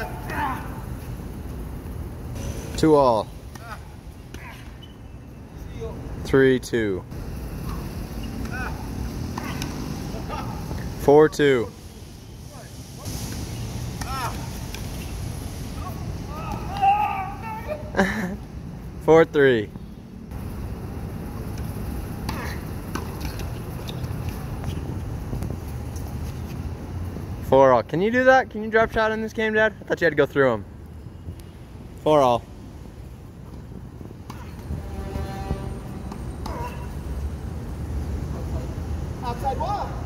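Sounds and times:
racket hitting tennis ball: 21.6 - 23.5.

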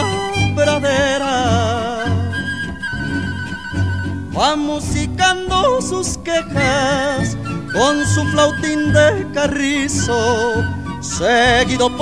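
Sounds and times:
violins with vibrato: 0.0 - 4.8
plucked bass notes: 0.0 - 12.0.

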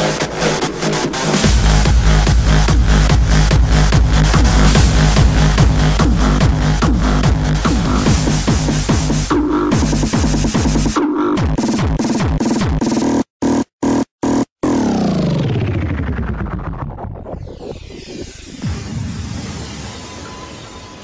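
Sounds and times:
hardstyle music with kick drum: 0.0 - 15.3.

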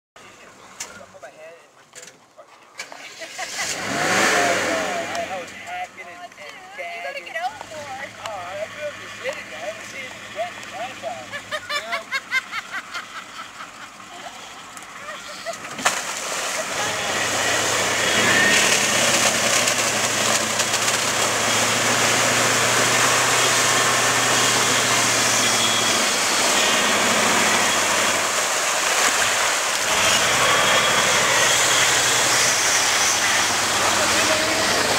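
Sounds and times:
off-road vehicle engine passing: 2.8 - 12.0, 13.9 - 34.9
tyres on gravel: 14.8 - 24.8
noisy wash of sound: 15.7 - 34.9.

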